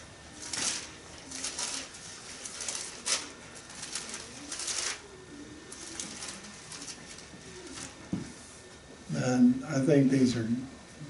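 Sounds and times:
thin pages turning: 0.4s - 5.1s, 5.7s - 8.0s.

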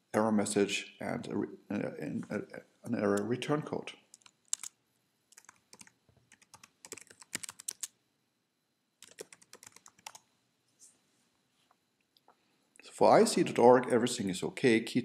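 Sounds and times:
computer keyboard typing: 4.1s - 7.9s, 9.0s - 10.2s.

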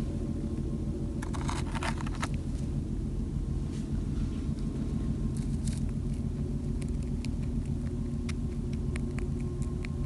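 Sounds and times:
steady low rumble: 0.0s - 10.0s
rabbit chewing hay clicks: 5.3s - 10.0s.

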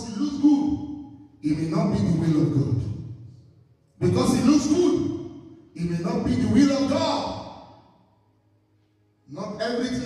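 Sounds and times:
man's voice through microphone: 0.0s - 7.8s, 9.2s - 10.0s.

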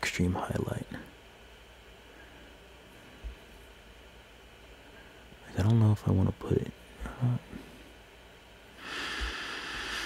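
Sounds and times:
man exhaling through nose: 8.8s - 10.0s.

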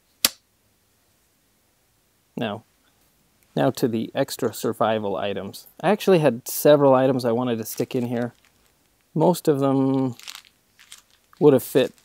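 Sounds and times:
sharp plastic click: 0.2s - 0.4s.

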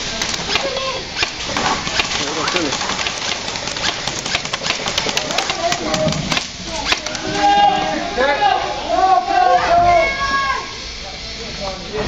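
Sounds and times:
airsoft guns clicking: 0.0s - 7.4s
steady background noise: 0.0s - 12.0s.

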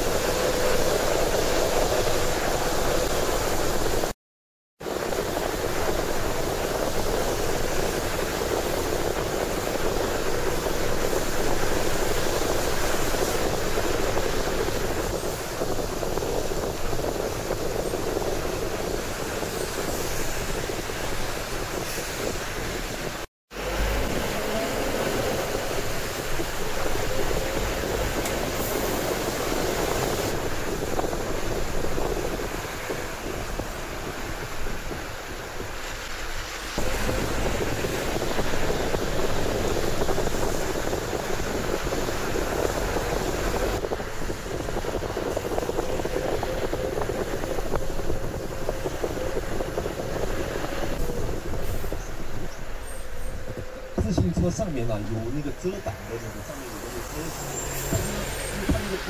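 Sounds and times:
tyre and engine noise: 4.8s - 59.0s.

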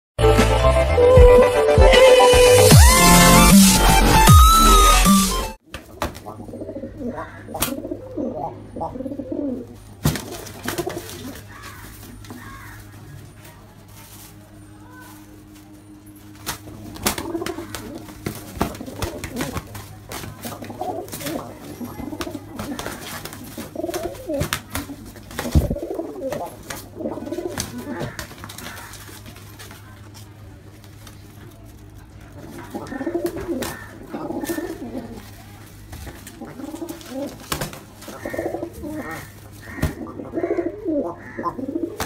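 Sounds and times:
wing slaps and flapping: 5.7s - 6.3s, 10.0s - 12.5s, 16.4s - 21.4s, 22.1s - 29.8s, 35.9s - 38.3s
pigeons cooing: 5.9s - 13.4s, 15.9s - 29.4s, 32.3s - 42.0s.

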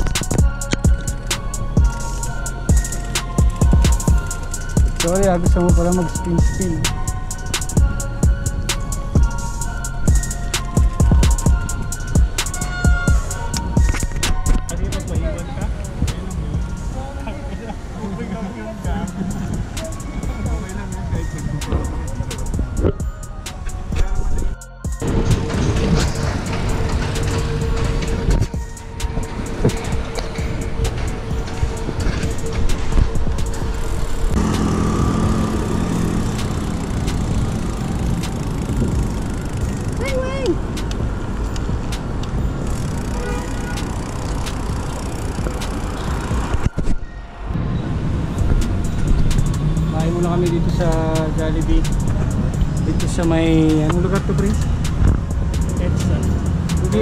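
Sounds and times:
road traffic: 0.0s - 57.0s
wind buffeting microphone: 18.7s - 57.0s.

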